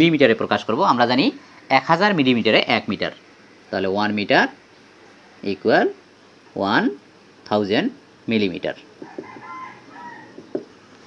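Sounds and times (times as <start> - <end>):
marker tapping on whiteboard: 9.0 - 9.4, 10.3 - 10.7
marker squeaking on whiteboard: 9.0 - 10.8.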